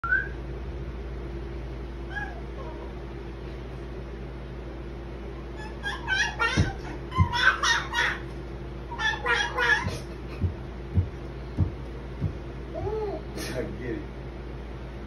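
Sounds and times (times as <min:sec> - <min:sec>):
low room hum: 0:00.0 - 0:15.0
baby babbling and squealing: 0:05.6 - 0:08.2, 0:12.8 - 0:13.3.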